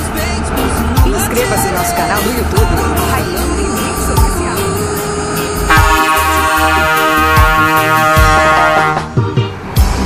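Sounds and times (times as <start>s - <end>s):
reggae remix music: 0.0s - 10.0s
truck horn: 0.1s - 9.5s.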